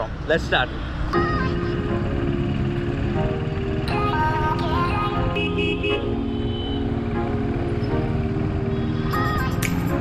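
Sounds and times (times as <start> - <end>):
motorcycle engine running: 1.2 - 10.0
vehicle horn tooting: 5.2 - 7.0.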